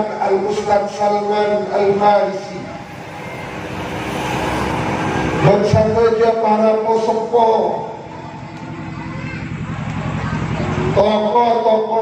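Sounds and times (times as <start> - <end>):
steady noisy rumble: 0.0 - 12.0.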